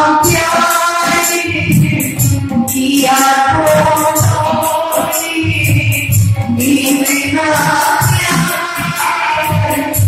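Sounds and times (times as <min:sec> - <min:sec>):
jingling hand percussion: 0:00.0 - 0:10.0
woman singing folk song: 0:00.0 - 0:10.0.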